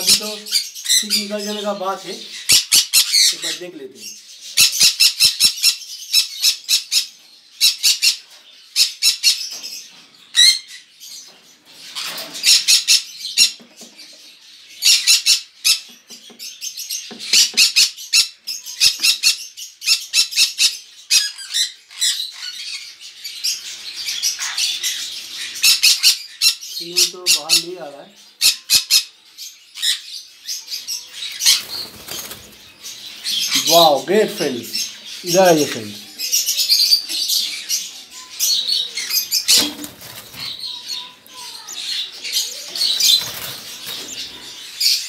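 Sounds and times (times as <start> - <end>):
parrots squawking: 0.0 - 9.5, 10.3 - 11.2, 11.8 - 13.7, 14.6 - 45.0.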